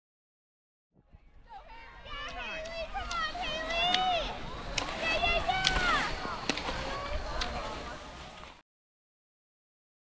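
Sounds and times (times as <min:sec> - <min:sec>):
distant voices: 0:01.1 - 0:08.6
ski poles clicking: 0:02.2 - 0:08.6.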